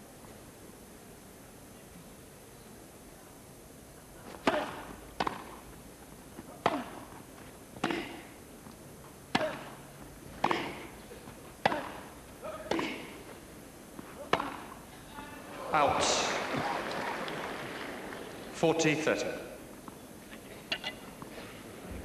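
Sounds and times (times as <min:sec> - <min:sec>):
tennis racket hitting ball: 0:04.3 - 0:05.8, 0:06.4 - 0:15.0.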